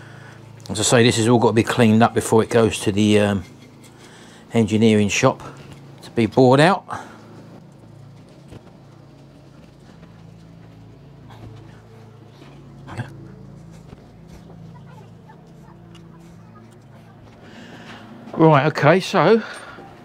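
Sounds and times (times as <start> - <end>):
steady low hum: 0.0 - 20.0
light knocks of engine parts: 0.2 - 20.0.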